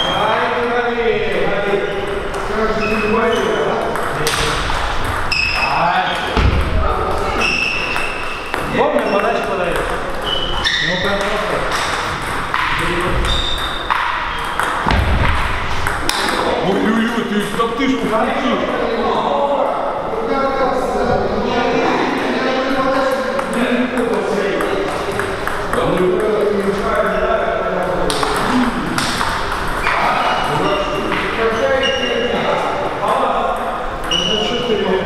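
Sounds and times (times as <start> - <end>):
voices talking in a hall: 0.0 - 35.0
table tennis ball pings: 7.7 - 16.6.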